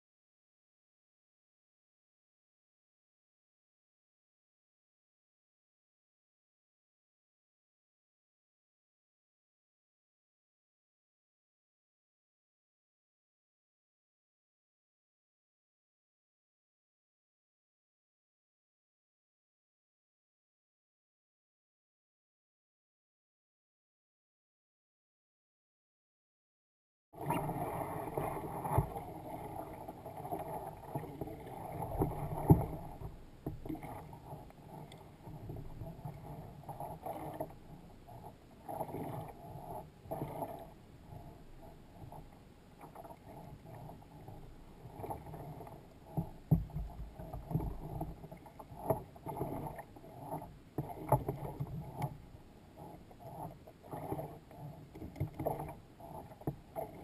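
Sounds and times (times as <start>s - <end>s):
water lapping against a hull: 27.2s - 57.0s.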